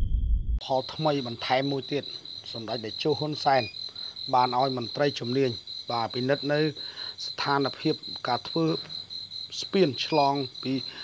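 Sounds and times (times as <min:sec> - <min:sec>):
person speaking: 0:00.7 - 0:03.7, 0:09.5 - 0:11.0.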